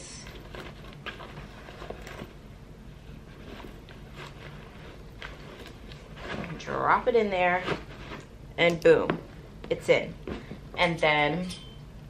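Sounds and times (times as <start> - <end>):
room hum: 0.0 - 12.0
rustling of handled bag: 0.2 - 8.3.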